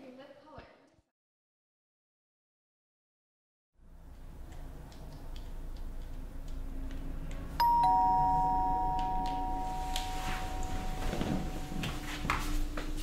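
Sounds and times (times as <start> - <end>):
two-note doorbell chime: 7.6 - 12.6.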